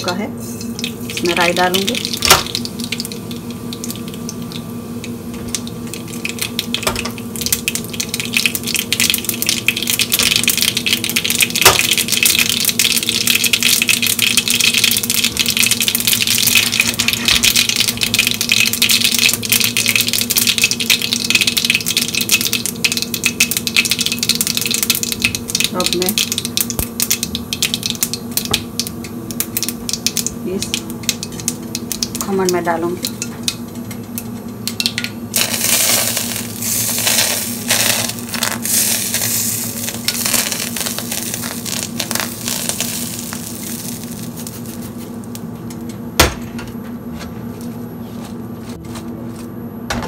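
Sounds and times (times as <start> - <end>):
seeds crackling in hot oil: 0.0 - 46.1.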